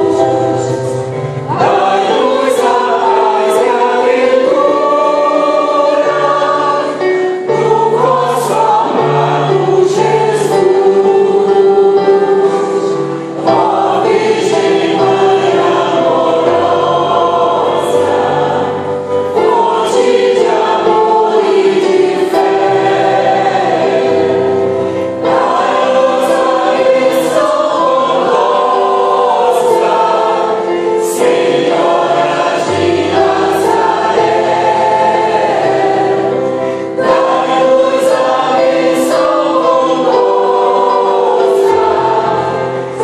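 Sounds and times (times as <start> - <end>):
choir singing a hymn: 0.0 - 43.0.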